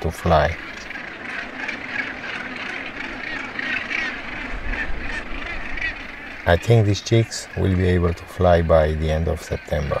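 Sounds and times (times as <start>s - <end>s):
seabird colony harsh calls: 0.0s - 10.0s.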